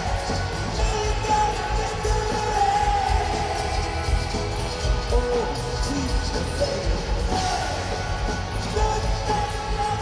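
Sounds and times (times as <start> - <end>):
drums keeping steady beat: 0.0 - 10.0
live rock band playing: 0.0 - 10.0.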